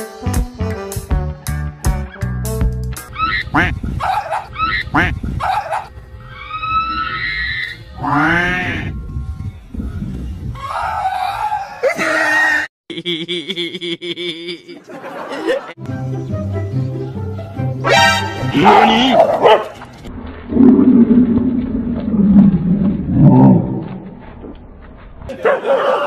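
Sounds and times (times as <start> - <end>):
background music: 0.0 - 3.8, 15.8 - 19.6
dog yelping and squealing: 3.1 - 7.7.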